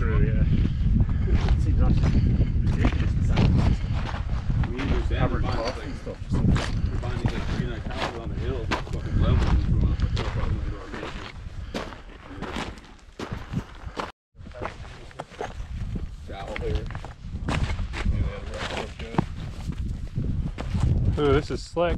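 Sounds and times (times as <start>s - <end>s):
wind buffeting microphone: 0.0s - 21.9s
footsteps on loose rock: 6.4s - 21.1s.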